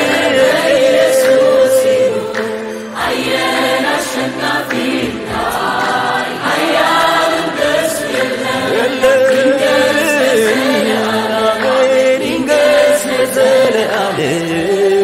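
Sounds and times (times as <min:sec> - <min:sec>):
choir singing gospel song: 0:00.0 - 0:15.0.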